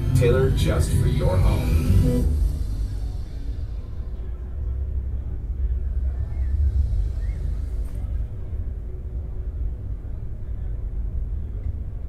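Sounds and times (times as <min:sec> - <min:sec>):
trade show hall rumble: 0:00.0 - 0:12.0.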